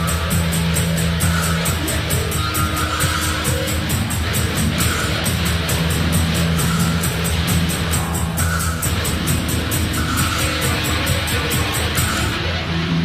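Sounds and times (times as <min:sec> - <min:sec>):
fast even drum beat: 0:00.0 - 0:12.4
rock band playing: 0:00.0 - 0:13.0
sustained low bass notes: 0:00.0 - 0:13.0.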